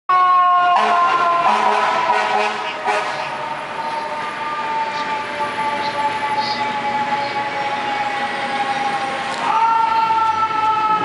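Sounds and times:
fire truck horn: 0:00.1 - 0:09.4
city traffic: 0:00.1 - 0:11.0
siren: 0:00.1 - 0:11.0.

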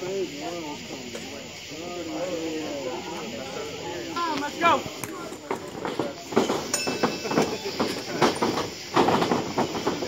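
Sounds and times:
spectators chattering: 0:00.0 - 0:10.0
steady background hiss: 0:00.0 - 0:10.0.

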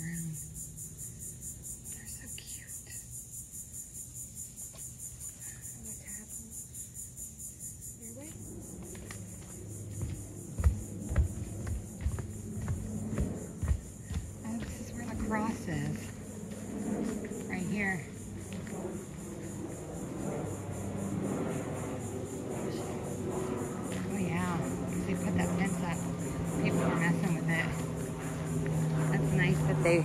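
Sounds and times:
insects droning: 0:00.0 - 0:30.0
footsteps on wooden footbridge: 0:08.8 - 0:17.3.

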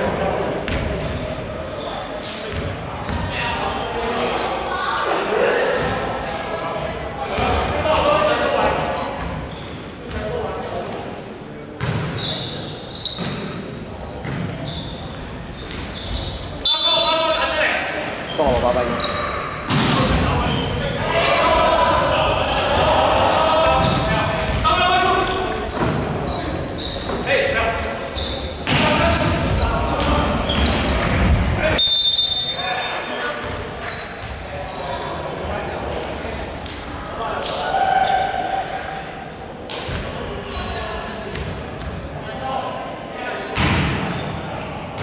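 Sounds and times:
players calling out: 0:13.8 - 0:33.0.

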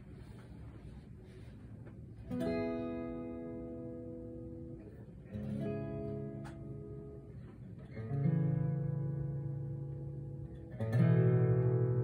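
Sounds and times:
guitar chord strummed: 0:02.3 - 0:12.0.

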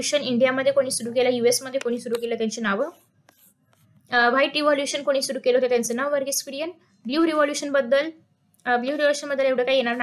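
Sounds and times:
woman speaking: 0:00.0 - 0:03.1, 0:04.1 - 0:10.0.

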